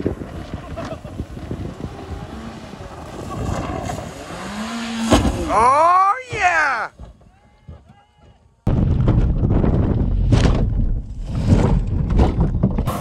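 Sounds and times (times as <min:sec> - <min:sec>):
wind on microphone: 0:00.0 - 0:04.6, 0:08.7 - 0:13.0
car engine at full throttle: 0:00.0 - 0:05.9
car hitting jump thump: 0:04.9 - 0:05.6, 0:08.7 - 0:13.0.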